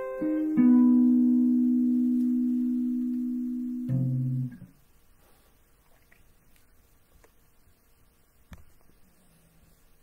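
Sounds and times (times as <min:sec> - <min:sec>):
jazz guitar notes: 0:00.0 - 0:04.8.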